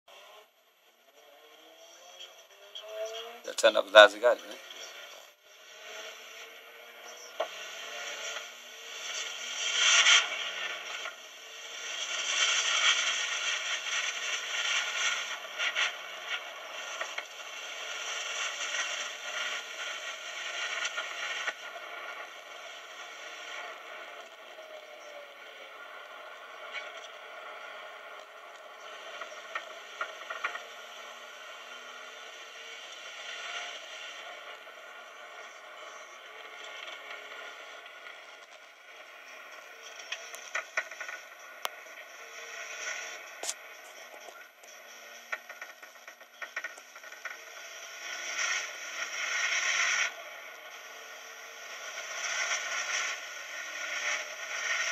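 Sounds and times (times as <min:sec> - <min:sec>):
car engine: 0:00.1 - 0:54.9
road noise: 0:00.1 - 0:54.9.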